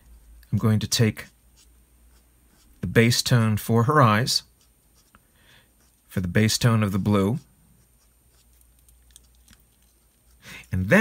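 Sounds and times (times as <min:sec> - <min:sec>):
marker scratching on paper: 0:00.0 - 0:03.1, 0:04.4 - 0:08.8.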